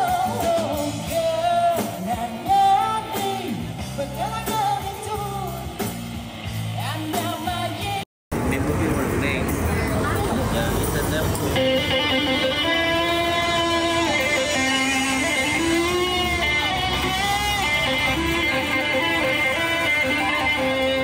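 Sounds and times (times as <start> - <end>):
live band music: 0.0 - 8.0, 9.1 - 21.0
electric guitar lead melody: 9.2 - 21.0.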